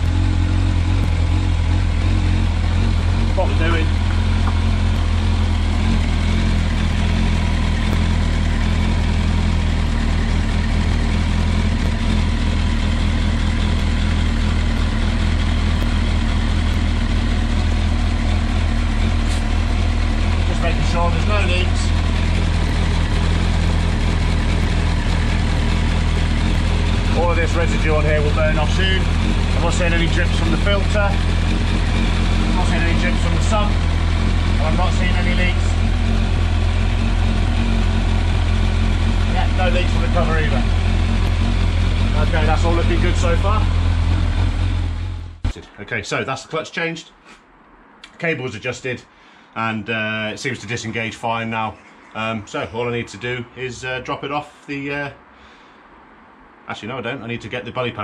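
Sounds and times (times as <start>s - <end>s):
motorcycle engine idling: 0.0s - 45.5s.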